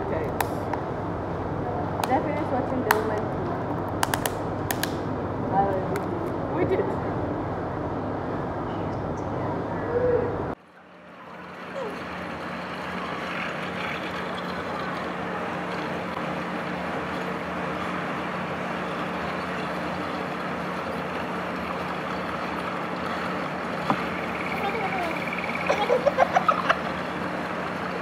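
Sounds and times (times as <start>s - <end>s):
constant low hum: 0.0s - 28.0s
indistinct chatter: 9.4s - 28.0s.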